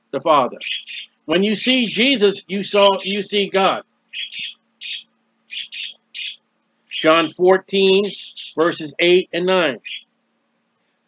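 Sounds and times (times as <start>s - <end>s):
small bird chirping: 0.6s - 2.2s, 2.8s - 3.4s, 4.1s - 9.2s, 9.8s - 10.1s.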